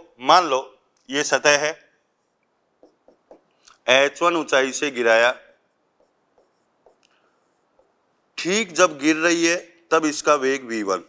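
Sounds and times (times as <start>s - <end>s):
pen scratching on screen: 2.1s - 3.5s, 5.7s - 8.0s.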